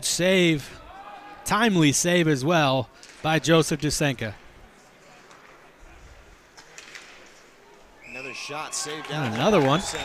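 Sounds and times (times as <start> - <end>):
ice hockey rink ambience: 0.0 - 10.0.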